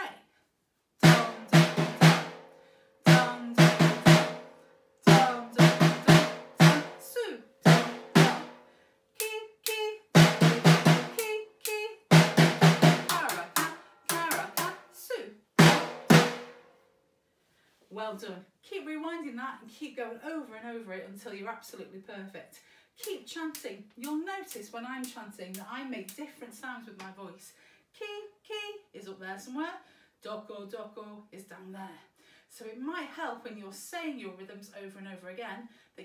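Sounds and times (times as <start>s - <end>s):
snare drum hits: 7.7s - 8.5s, 15.6s - 16.6s.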